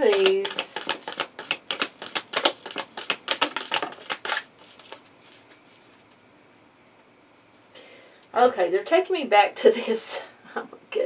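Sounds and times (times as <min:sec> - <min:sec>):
cards being shuffled: 0:00.0 - 0:06.2.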